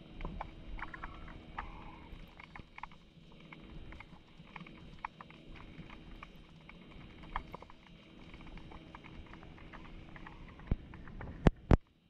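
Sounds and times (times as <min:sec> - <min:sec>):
underwater clicks and crackles: 0:00.0 - 0:12.0.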